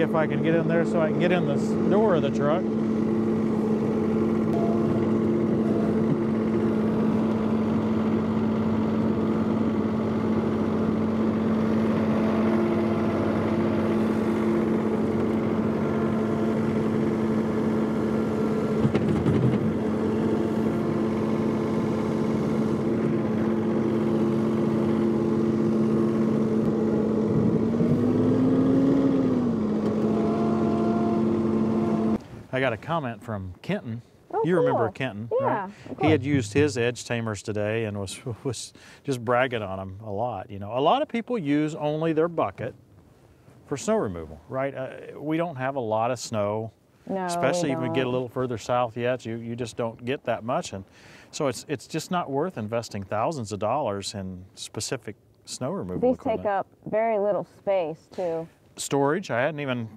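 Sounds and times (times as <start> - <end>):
tractor diesel engine running: 0.0 - 32.8, 34.3 - 37.1
loader knock: 36.0 - 36.9.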